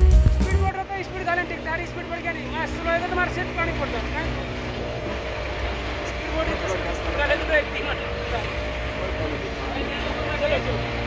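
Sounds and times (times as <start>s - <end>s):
boat engine droning: 0.0s - 11.0s.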